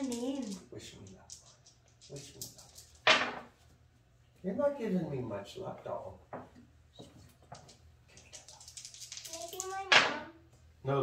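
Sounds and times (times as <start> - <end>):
dice rattling and clattering: 0.0 - 3.5, 7.5 - 10.2.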